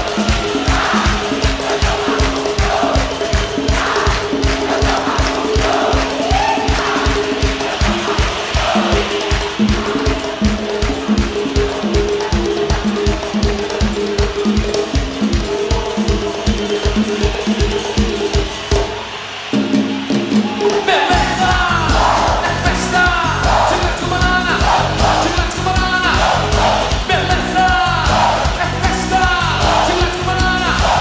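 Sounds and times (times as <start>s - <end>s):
faint crowd: 0.0s - 31.0s
fast drum beat: 0.0s - 31.0s.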